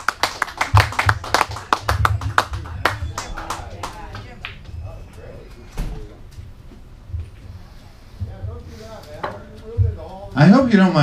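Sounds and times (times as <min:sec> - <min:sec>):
small audience clapping: 0:00.0 - 0:04.7.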